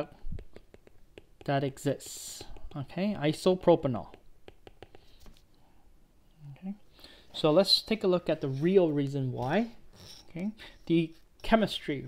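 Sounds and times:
stylus tapping on glass screen: 4.0s - 5.1s.

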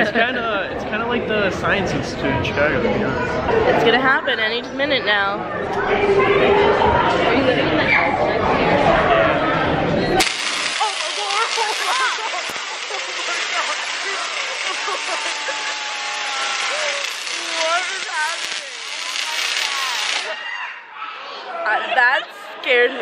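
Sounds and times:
excited voices: 5.5s - 23.0s
tesla coil electric buzz: 10.2s - 20.4s.

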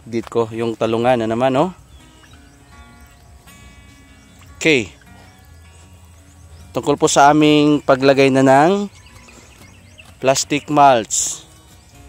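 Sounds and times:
soft acoustic background music: 0.0s - 12.0s.

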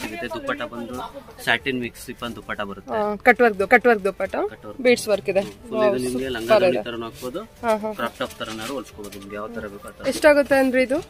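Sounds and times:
person talking: 5.0s - 6.9s.

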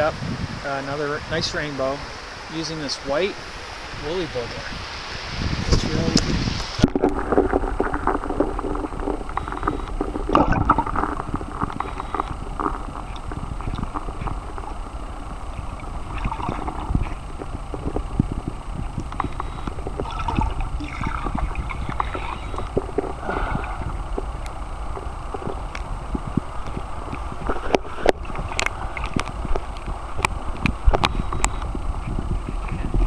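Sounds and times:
muffled underwater stream rush: 0.0s - 33.0s
small underwater clicks and knocks: 6.2s - 33.0s.

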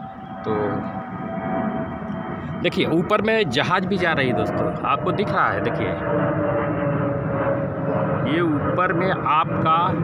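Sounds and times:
jet aircraft passing overhead: 0.0s - 10.0s.

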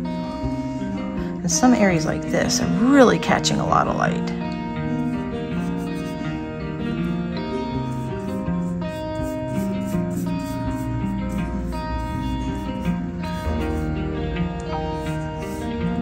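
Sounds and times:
instrumental music: 0.0s - 16.0s
plucked guitar notes: 10.9s - 15.0s.

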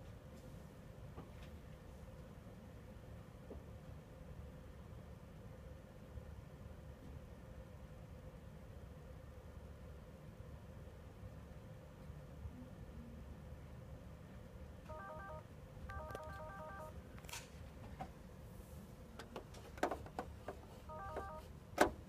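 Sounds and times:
room hum: 0.0s - 22.0s
laptop quick electronic beeps: 14.9s - 16.9s, 20.9s - 21.4s.

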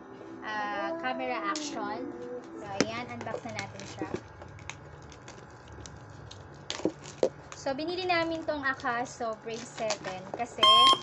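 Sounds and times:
plastic wrap rustling: 3.1s - 10.5s.

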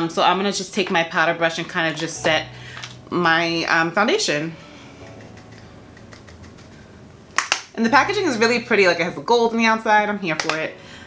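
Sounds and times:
woman speaking: 0.0s - 4.6s, 7.7s - 10.8s
plastic compact clicking: 10.3s - 10.6s.

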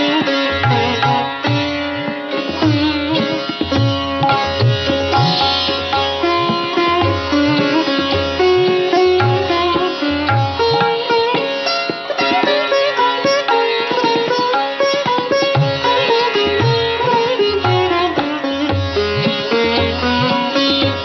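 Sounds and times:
sitar playing: 0.0s - 21.0s.

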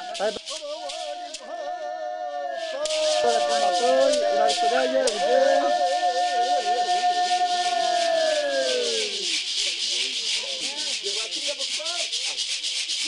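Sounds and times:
rattles shaken in fast rhythm: 0.0s - 1.5s, 2.7s - 13.0s
voices chanting: 0.0s - 13.0s.

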